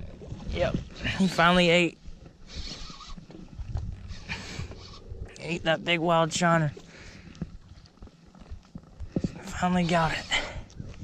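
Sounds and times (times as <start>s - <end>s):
fishing reel whirring: 2.5s - 3.4s, 4.0s - 5.3s, 9.5s - 10.6s
microphone handling rumble: 3.2s - 6.8s, 7.4s - 9.7s.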